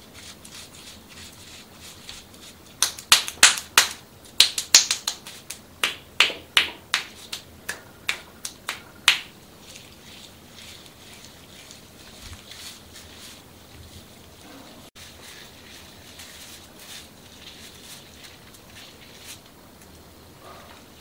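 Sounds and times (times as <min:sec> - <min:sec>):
hands patting wet face: 0:02.0 - 0:19.5.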